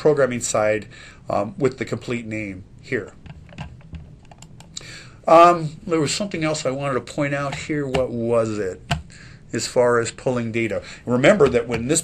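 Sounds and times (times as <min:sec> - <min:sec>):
computer keyboard taps: 0:08.9 - 0:09.1.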